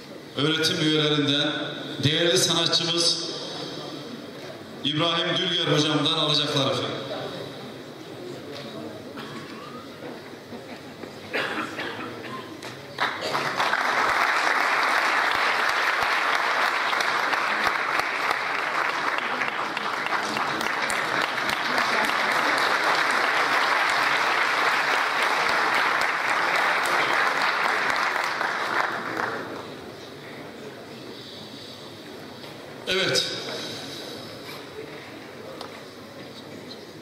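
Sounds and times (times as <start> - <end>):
audience applauding: 12.9 - 29.8.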